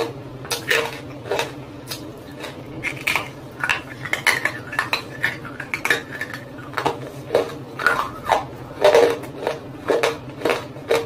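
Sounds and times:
crunching and chewing: 0.5s - 11.0s.

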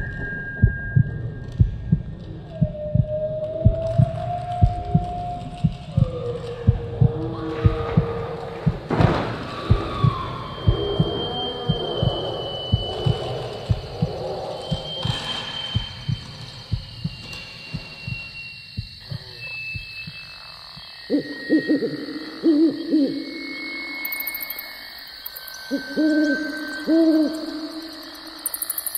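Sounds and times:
eerie tones sliding down: 0.0s - 28.9s
heartbeat thumping: 0.6s - 20.3s.

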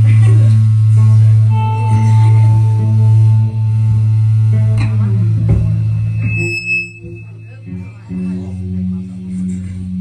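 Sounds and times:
bass guitar: 0.0s - 10.0s
electric guitar: 0.0s - 10.0s.

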